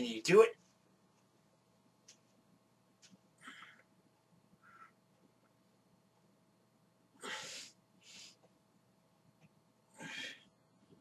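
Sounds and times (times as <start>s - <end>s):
man breathing out hard: 10.0s - 10.5s.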